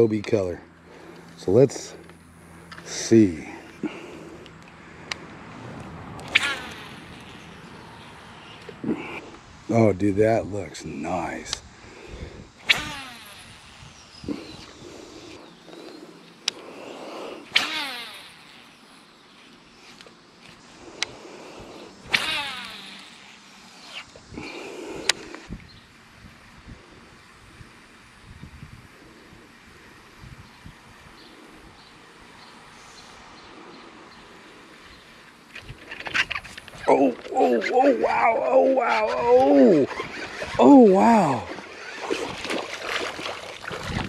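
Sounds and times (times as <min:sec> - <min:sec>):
fishing reel spool whirring: 0:00.0 - 0:08.8, 0:11.0 - 0:28.3, 0:35.4 - 0:44.0
fishing reel clicks: 0:06.2 - 0:08.7, 0:12.6 - 0:14.6, 0:17.5 - 0:18.8, 0:22.0 - 0:24.1.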